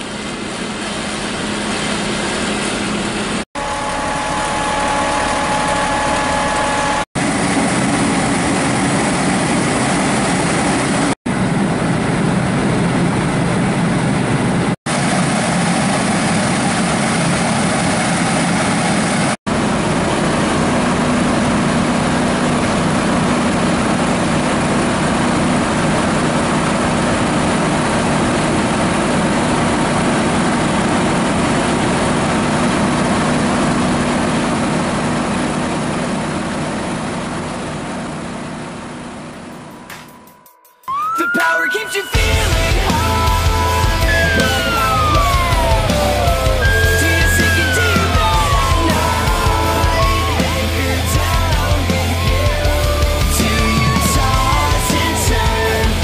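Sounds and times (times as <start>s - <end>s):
fire engines idling: 0.0s - 6.1s, 7.2s - 39.6s, 42.2s - 56.0s.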